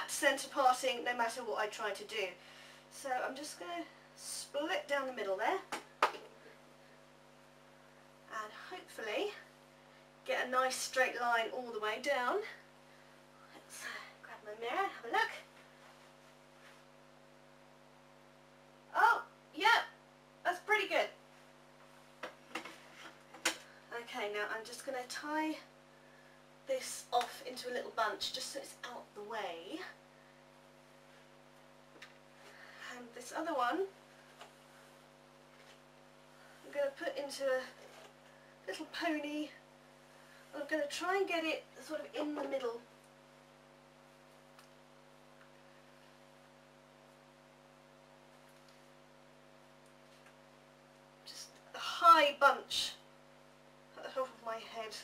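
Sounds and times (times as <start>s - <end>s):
low mains hum: 0.0s - 55.0s.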